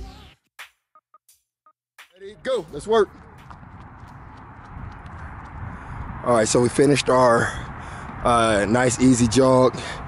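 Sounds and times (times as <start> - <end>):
wind rumble on microphone: 2.8 - 10.0
footfalls on rubber track: 3.1 - 6.2.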